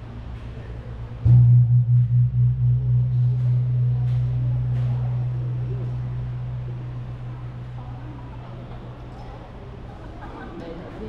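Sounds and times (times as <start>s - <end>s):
large gong struck: 1.2s - 9.1s.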